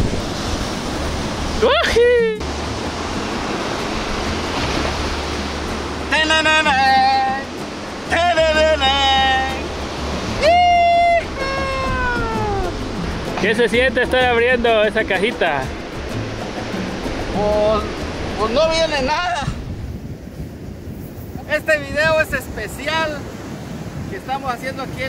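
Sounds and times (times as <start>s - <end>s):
ocean surf: 0.0s - 25.0s
wind on microphone: 0.0s - 25.0s.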